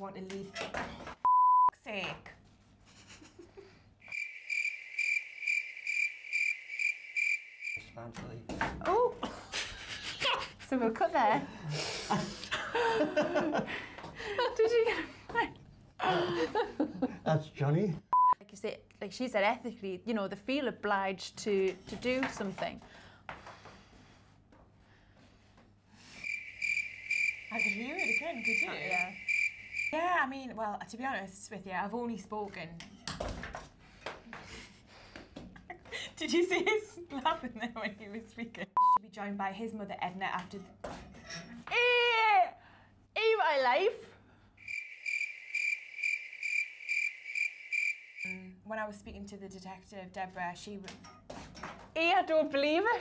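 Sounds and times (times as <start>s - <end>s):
crickets chirping: 4.0s - 7.9s, 26.1s - 30.0s, 44.6s - 48.4s.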